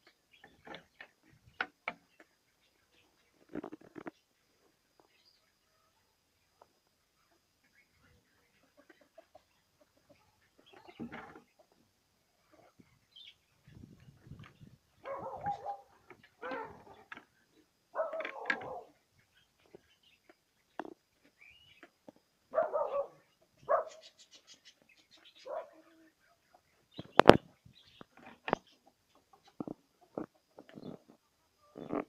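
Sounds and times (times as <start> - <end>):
animal whining call: 15.0 - 17.1.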